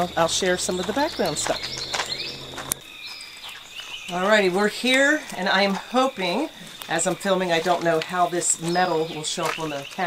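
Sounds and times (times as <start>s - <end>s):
faint bird calls: 0.0s - 4.2s
insect drone: 0.0s - 10.0s.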